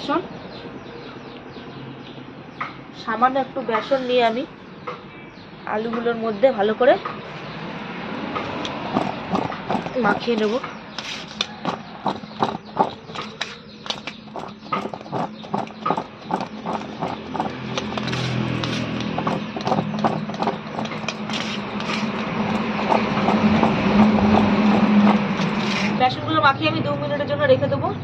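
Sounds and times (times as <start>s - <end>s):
potatoes rattling on steel plate: 8.9s - 25.9s.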